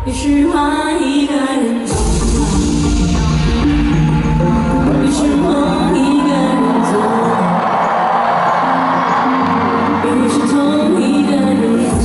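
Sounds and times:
woman singing: 0:00.0 - 0:08.0, 0:09.4 - 0:12.0
live band playing pop song: 0:01.8 - 0:12.0.

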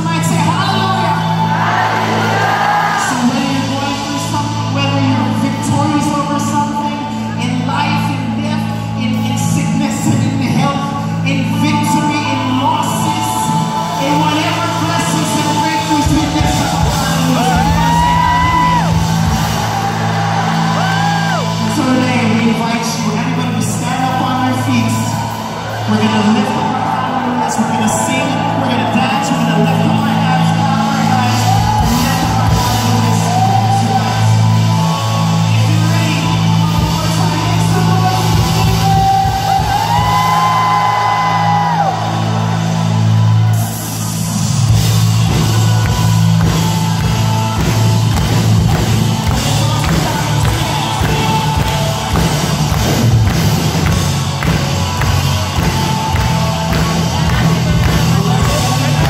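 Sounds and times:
heavy bass: 0:00.0 - 0:59.0
worship band playing: 0:00.0 - 0:59.0.

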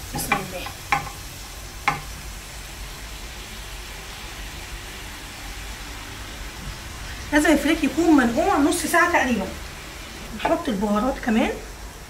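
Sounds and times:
frying hiss in pan: 0:00.0 - 0:12.0.

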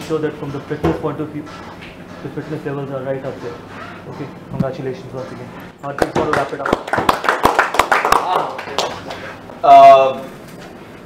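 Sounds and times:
people applauding: 0:05.9 - 0:09.4.

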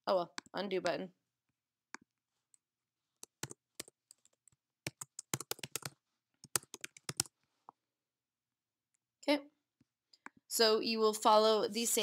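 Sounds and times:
computer keyboard typing: 0:03.2 - 0:07.4.

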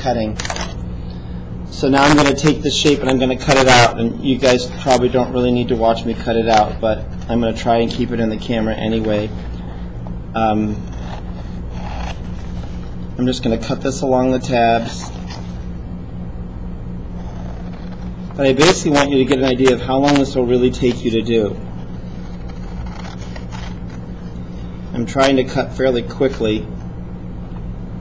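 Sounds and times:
steady low hum: 0:00.0 - 0:28.0
scissors cutting paper: 0:00.4 - 0:00.8, 0:10.7 - 0:12.9, 0:14.7 - 0:15.6, 0:17.1 - 0:24.3.

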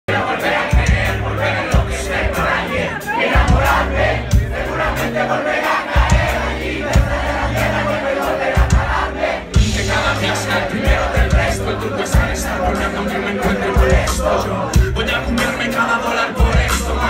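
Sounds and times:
bass notes: 0:00.1 - 0:17.0
crowd shouting and cheering: 0:00.1 - 0:17.0
live band playing: 0:00.1 - 0:17.0.

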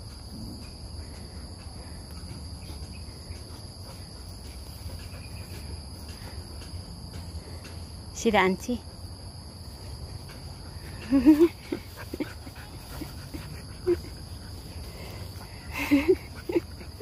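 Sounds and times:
dogs vocalizing while playing: 0:10.1 - 0:17.0.

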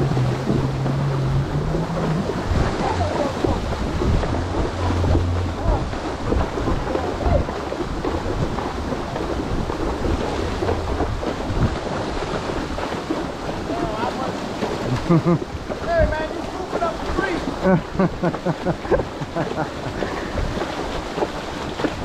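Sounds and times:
horses splashing through water: 0:00.0 - 0:22.0.

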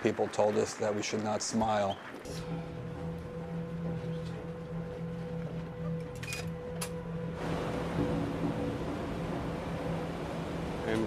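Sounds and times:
steady low hum: 0:02.3 - 0:11.0.

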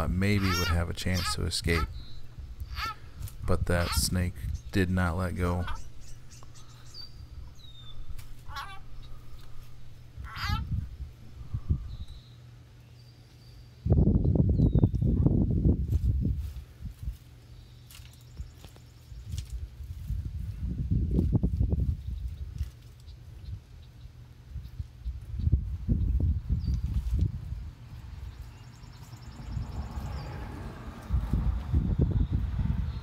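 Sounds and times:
wind rumbling on microphone: 0:00.0 - 0:12.4, 0:13.8 - 0:17.3, 0:18.3 - 0:33.0
small birds chirping: 0:00.0 - 0:15.4, 0:17.1 - 0:31.2.

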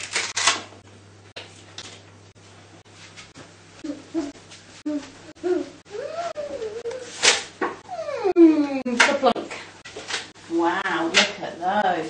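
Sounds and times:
velcro ripping: 0:00.0 - 0:00.6
low steady hum: 0:00.0 - 0:12.0.

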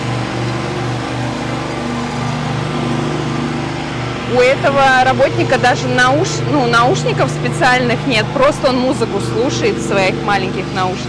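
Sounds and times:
riding lawn mower engine running: 0:00.0 - 0:11.0.

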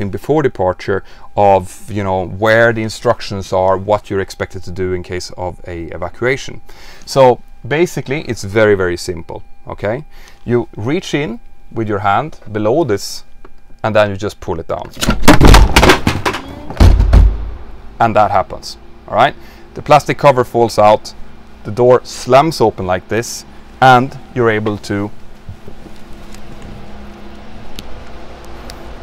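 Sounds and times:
low mechanical hum: 0:00.0 - 0:29.0
door slamming open: 0:15.0 - 0:17.6.

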